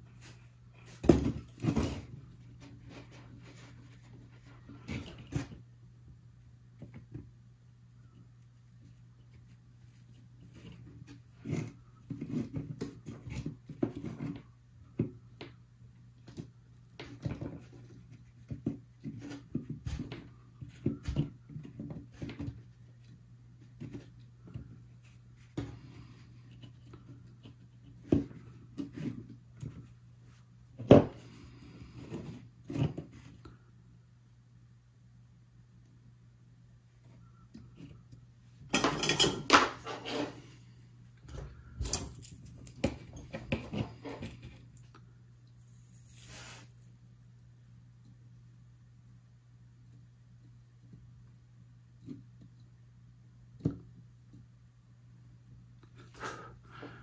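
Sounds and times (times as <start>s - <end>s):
wires clicking and rustling: 41.2s - 46.6s.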